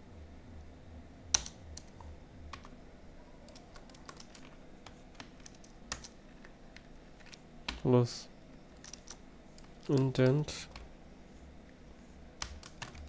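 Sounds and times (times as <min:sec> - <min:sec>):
computer keyboard typing: 0:01.3 - 0:02.8, 0:03.4 - 0:07.9, 0:08.8 - 0:10.9, 0:12.4 - 0:13.0
loud keyboard clicks: 0:03.5 - 0:04.5, 0:05.2 - 0:06.2, 0:08.8 - 0:10.9, 0:12.4 - 0:13.0.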